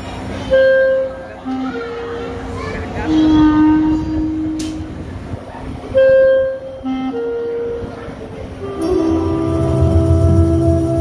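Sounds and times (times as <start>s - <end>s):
accordion playing folk dance music: 6.3s - 11.0s.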